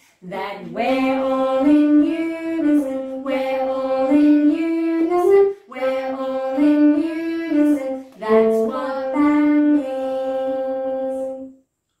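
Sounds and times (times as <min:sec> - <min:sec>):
voices singing in unison: 0:00.2 - 0:10.0
saxophone melody: 0:00.7 - 0:11.6.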